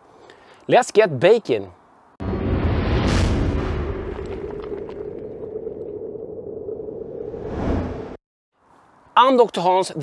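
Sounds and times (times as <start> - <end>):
cinematic whooshing boom: 2.2 - 5.3.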